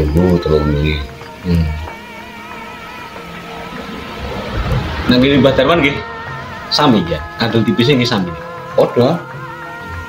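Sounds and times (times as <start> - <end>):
music with wavering melody: 0.0 - 10.0
low thumps: 3.1 - 6.5.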